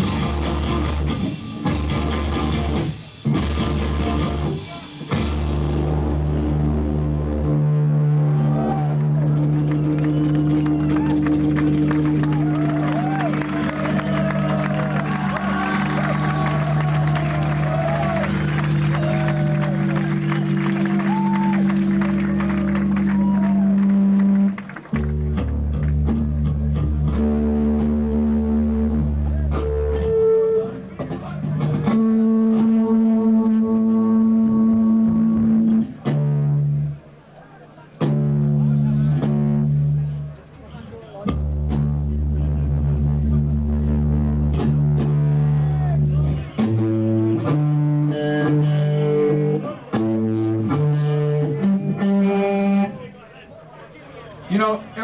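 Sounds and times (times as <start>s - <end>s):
electric guitar tuning: 0.0s - 37.0s, 38.0s - 53.1s
bass guitar tuning: 0.0s - 37.3s, 38.0s - 53.3s.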